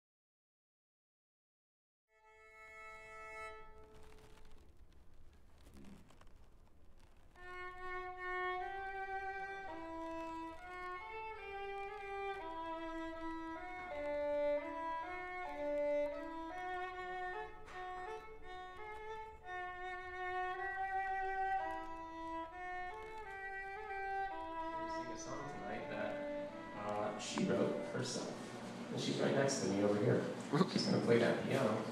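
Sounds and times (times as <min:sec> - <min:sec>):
violin playing slow melody: 0:02.1 - 0:04.2, 0:07.3 - 0:30.0.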